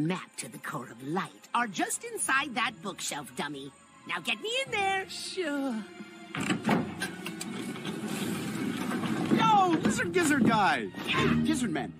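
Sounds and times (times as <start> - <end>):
background music: 0.0 - 11.9
door mechanism rumbling: 6.3 - 10.6.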